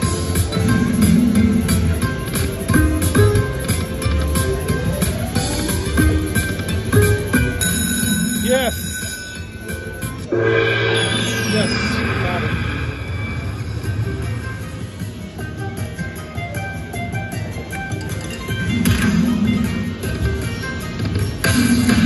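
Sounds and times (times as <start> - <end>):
slot machine bonus music: 0.0 - 22.0
falling sweep tones: 10.3 - 13.8.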